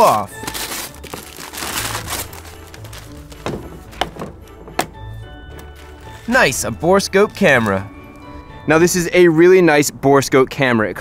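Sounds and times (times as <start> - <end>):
wrapping paper tearing: 0.0 - 3.5, 5.8 - 6.6
background music: 0.0 - 11.0
plastic case knocks and clicks: 3.3 - 5.0.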